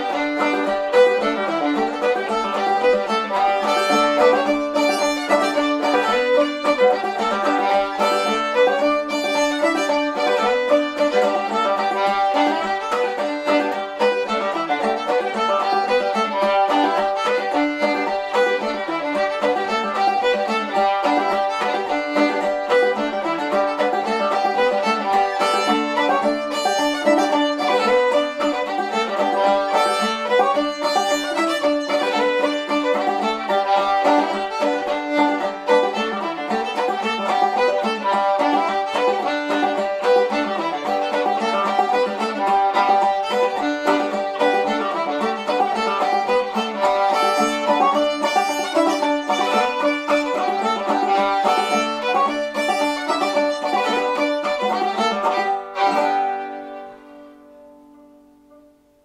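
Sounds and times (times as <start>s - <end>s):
banjo accompaniment: 0.0s - 59.0s
fiddle tune: 0.0s - 59.0s.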